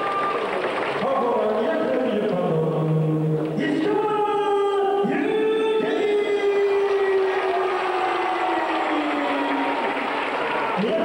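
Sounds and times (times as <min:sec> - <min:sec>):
crowd shouting: 0:05.1 - 0:11.0.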